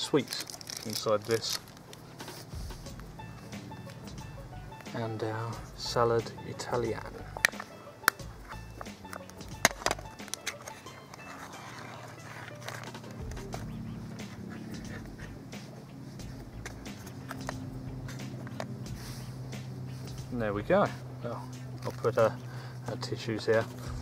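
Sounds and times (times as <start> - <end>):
steady low drone: 2.5 - 11.2, 12.6 - 23.0, 23.6 - 24.0
tin lid cracked open: 7.4 - 11.3.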